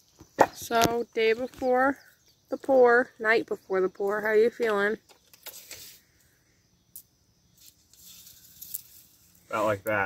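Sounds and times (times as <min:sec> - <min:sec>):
quiet outdoor background: 0:00.0 - 0:10.0.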